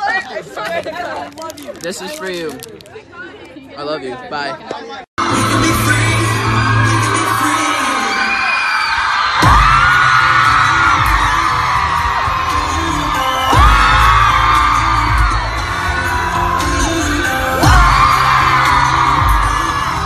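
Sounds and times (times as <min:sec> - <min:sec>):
live pop music singing: 0:05.2 - 0:08.5, 0:09.4 - 0:20.0
crowd cheering: 0:05.2 - 0:20.0.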